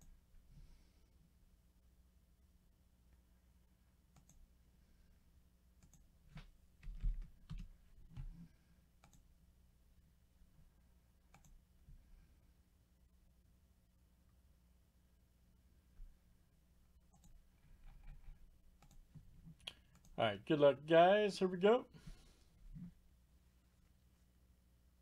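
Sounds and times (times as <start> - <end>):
keyboard and mouse clicks: 4.1 - 4.4, 5.8 - 9.3, 11.3 - 11.6, 17.1 - 20.2.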